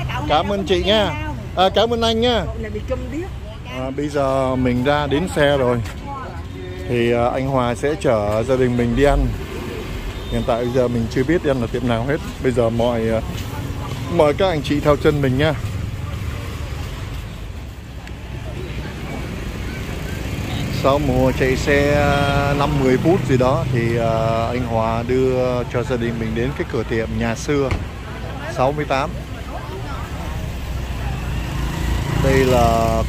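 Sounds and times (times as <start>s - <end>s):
faint voices: 0.0s - 33.0s
low rumble of street noise: 0.0s - 33.0s.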